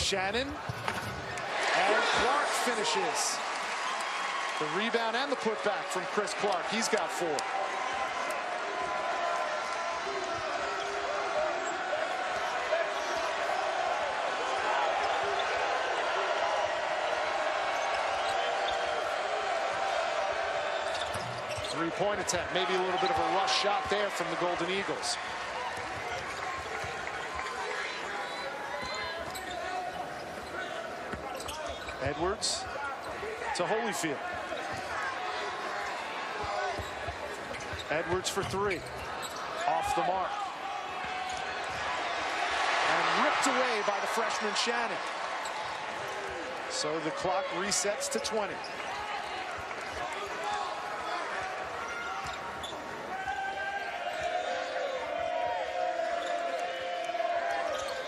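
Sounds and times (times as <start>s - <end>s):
crowd chatter: 4.6s - 58.0s
sneaker squeaks: 17.7s - 19.0s, 20.7s - 22.0s, 25.8s - 33.3s, 34.2s - 40.1s, 41.0s - 42.1s, 48.6s - 55.0s, 57.4s - 58.0s.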